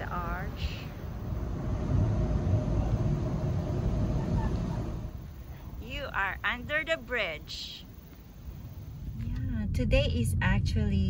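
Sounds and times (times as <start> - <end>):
passing vehicle rumble: 0.0 - 6.8
faint steady hum: 0.0 - 11.0.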